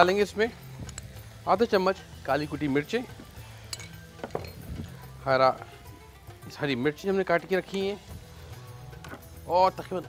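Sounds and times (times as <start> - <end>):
spoon clinking against pan: 3.6 - 4.7.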